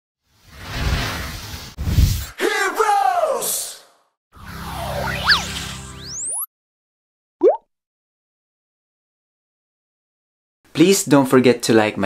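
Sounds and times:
rising whistle-like sweep: 0:04.4 - 0:06.5
upward-gliding bloop pop: 0:07.4 - 0:07.6.

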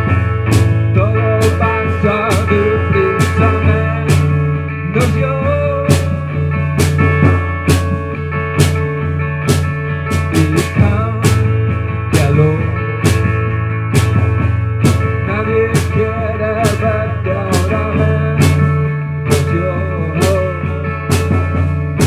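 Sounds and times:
acoustic guitar: 0:00.0 - 0:22.0
drums and cymbal: 0:00.0 - 0:22.0.

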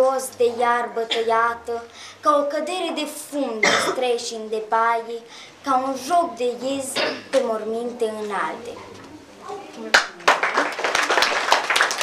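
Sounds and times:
children applauding: 0:09.9 - 0:12.0.

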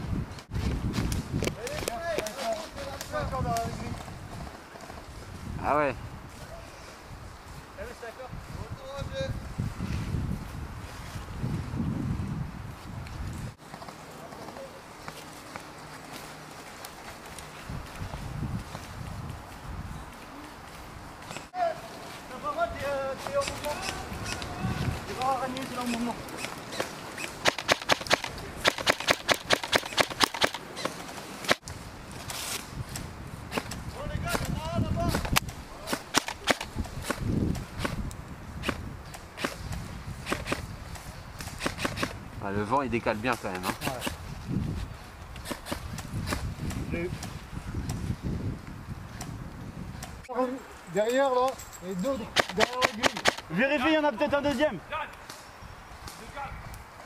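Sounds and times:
airsoft rifle shots: 0:25.8 - 0:30.6, 0:35.1 - 0:37.2, 0:40.2 - 0:40.7, 0:41.4 - 0:42.2, 0:52.3 - 0:53.5.

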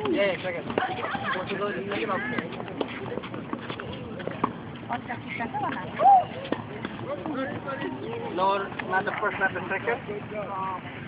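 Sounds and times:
children chattering and calling out: 0:00.0 - 0:08.7.

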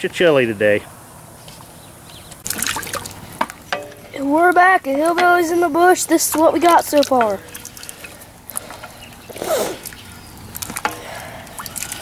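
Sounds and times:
wood knocking and scraping pot: 0:10.6 - 0:11.1.

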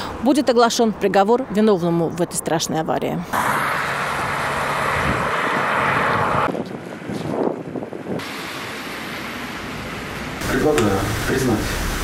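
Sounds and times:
car passing on road: 0:03.3 - 0:10.4.

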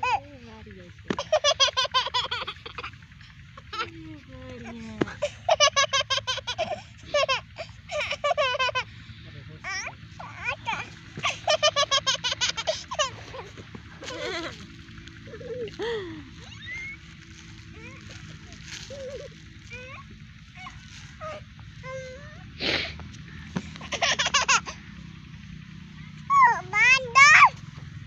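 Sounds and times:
low steady background hum: 0:00.0 - 0:28.0.

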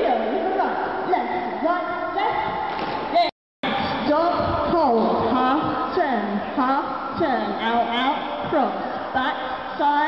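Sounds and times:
woman speaking through microphone: 0:00.0 - 0:10.0.

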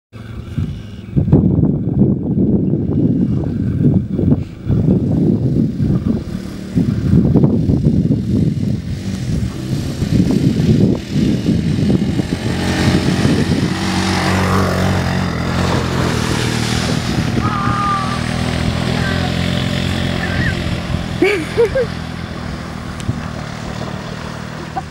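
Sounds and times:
engine running under load: 0:00.1 - 0:24.9
water spray hissing: 0:06.3 - 0:24.9.

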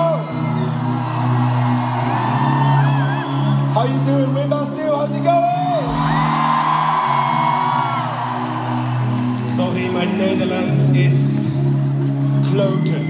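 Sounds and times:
crowd cheering and whooping: 0:00.0 - 0:03.9, 0:05.6 - 0:09.5.

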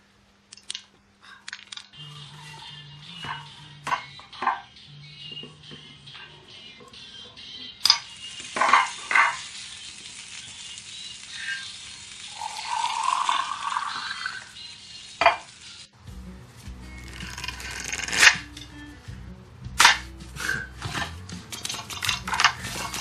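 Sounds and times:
kitchen utensils clattering: 0:02.5 - 0:04.8, 0:07.8 - 0:09.6, 0:19.8 - 0:23.0
sizzling or pouring: 0:08.0 - 0:16.0, 0:17.0 - 0:18.5, 0:20.4 - 0:23.0.

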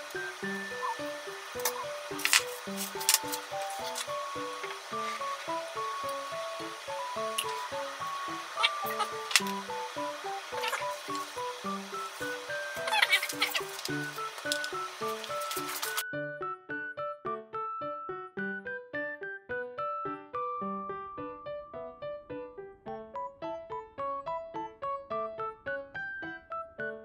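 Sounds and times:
bouncy background music: 0:00.0 - 0:27.0.

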